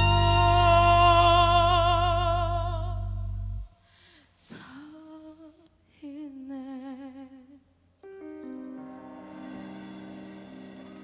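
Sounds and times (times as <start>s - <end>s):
woman singing long note: 0.0s - 3.1s.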